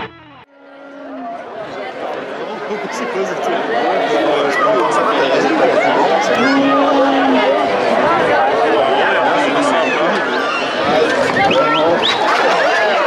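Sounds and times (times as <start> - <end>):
crowd babble: 0.0 - 13.0
person calling out long: 6.4 - 7.6.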